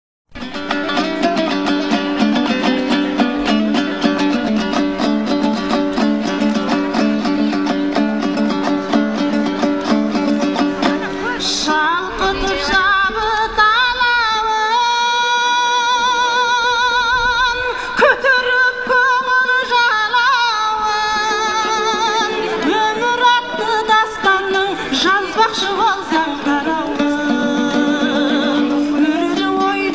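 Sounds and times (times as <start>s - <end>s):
lute strummed fast: 0.3s - 29.9s
woman singing with vibrato: 11.0s - 29.9s.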